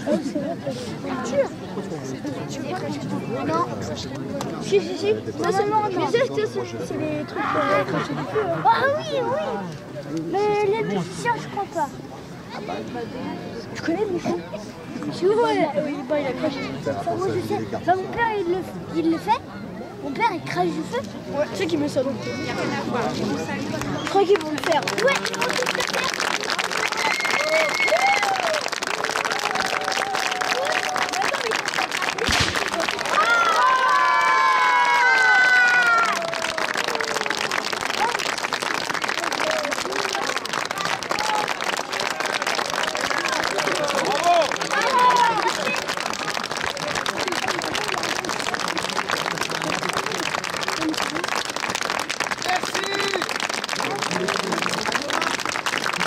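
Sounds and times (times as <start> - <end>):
audience applauding: 23.7 - 56.0
crowd cheering shouts: 26.7 - 38.2, 39.2 - 49.7
sharp crack: 32.1 - 33.2.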